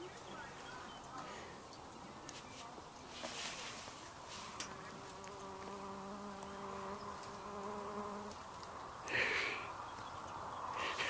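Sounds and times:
flying insect buzzing: 4.6s - 8.4s.

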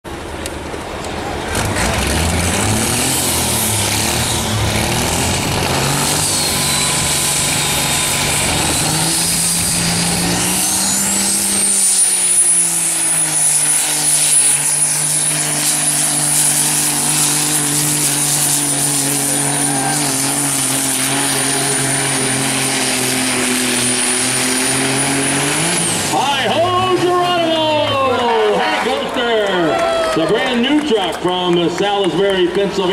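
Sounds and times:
diesel truck engine at full throttle: 0.0s - 32.9s.

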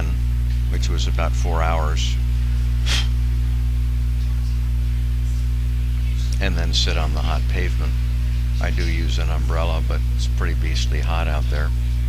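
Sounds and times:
low electrical mains hum: 0.0s - 12.0s.

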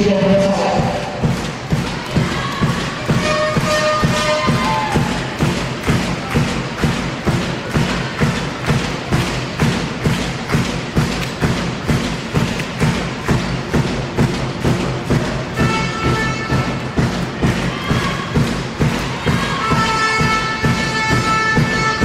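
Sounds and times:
drum beaten in steady rhythm: 0.0s - 22.0s.

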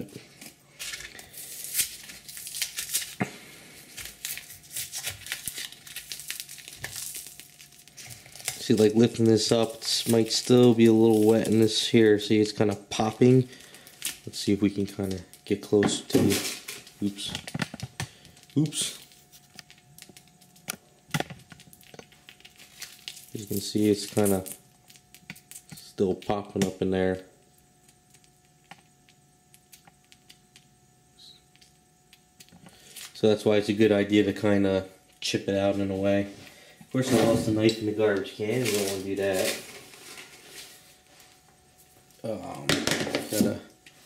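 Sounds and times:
foam and tape crinkling tearing: 0.3s - 27.2s, 37.0s - 41.4s, 43.2s - 44.0s.

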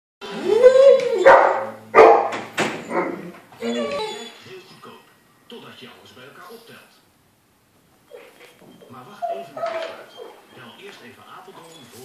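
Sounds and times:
dog howling call: 0.3s - 1.8s, 9.2s - 10.4s
dog barking: 1.2s - 3.2s.

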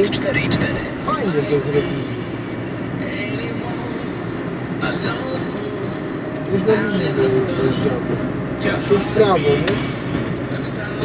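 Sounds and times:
car engine at speed: 0.0s - 11.0s
tyres on wet road: 0.0s - 11.0s.

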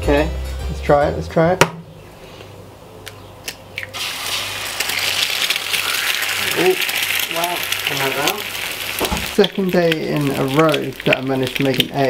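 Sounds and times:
eggshell cracking: 3.0s - 12.0s
fat sizzling in a frying pan: 4.0s - 12.0s.

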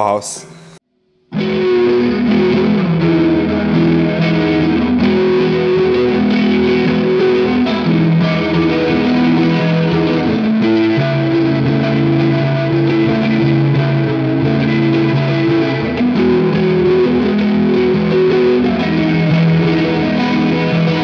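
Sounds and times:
distorted electric guitar chords: 1.2s - 21.0s.

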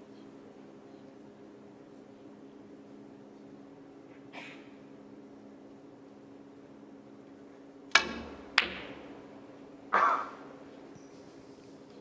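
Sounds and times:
cue tip striking ball click: 7.9s - 9.1s
snooker balls clicking together: 7.9s - 9.1s
dull knock of snooker balls: 8.0s - 9.1s.

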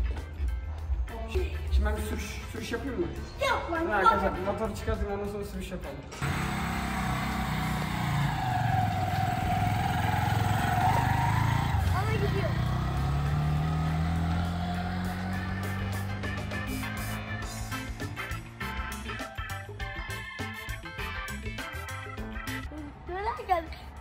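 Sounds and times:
background music: 0.0s - 6.2s, 11.1s - 24.0s
motorcycle engine pulling away: 6.2s - 20.5s.

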